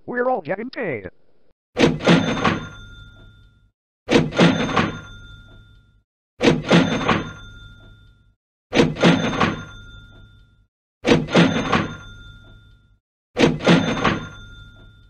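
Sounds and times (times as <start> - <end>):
cash register clicks and bell: 2.0 - 15.0.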